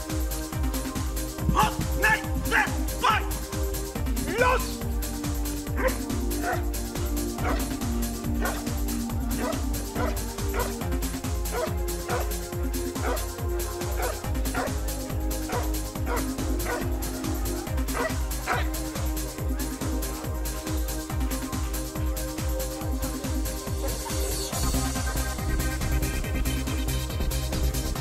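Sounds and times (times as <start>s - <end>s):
electronic music with thumping beat: 0.0s - 28.0s
dog barking: 5.8s - 6.7s, 7.4s - 7.8s, 8.4s - 8.7s, 9.3s - 10.9s, 11.5s - 12.4s, 13.0s - 13.3s, 13.9s - 14.8s, 15.4s - 16.9s, 17.9s - 18.8s.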